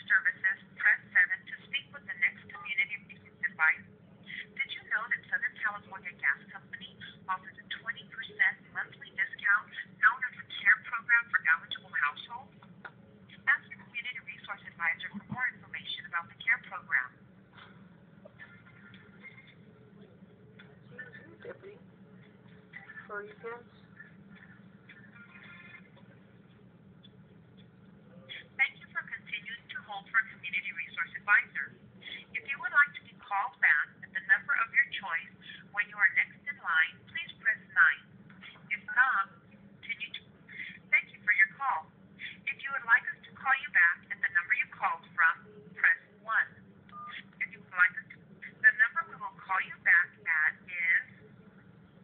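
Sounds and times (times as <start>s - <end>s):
recorded voice over phone: 0.0s - 12.5s, 13.4s - 17.1s, 28.3s - 46.5s, 47.1s - 51.1s.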